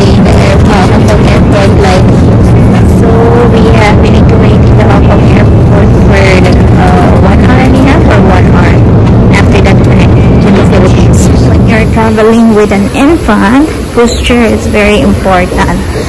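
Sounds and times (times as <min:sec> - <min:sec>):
airliner cabin rumble: 0:00.0 - 0:16.0
indistinct voices: 0:00.0 - 0:16.0.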